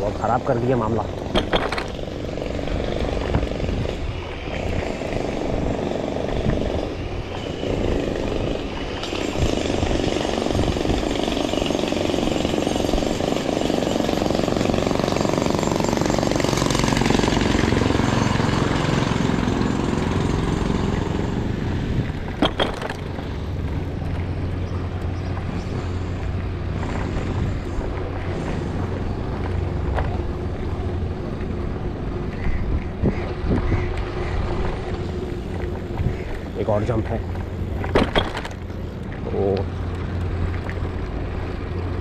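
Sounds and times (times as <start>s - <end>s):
wind rumble on microphone: 1.1s - 13.1s, 23.1s - 38.2s
bicycle rattle: 22.0s - 42.0s.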